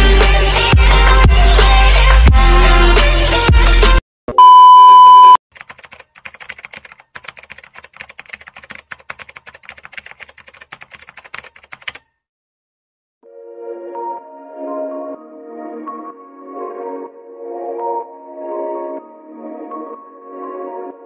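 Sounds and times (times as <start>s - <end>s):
loud high beep: 4.4s - 5.4s
keyboard typing clicks: 5.6s - 12.0s
background music: 13.2s - 21.0s.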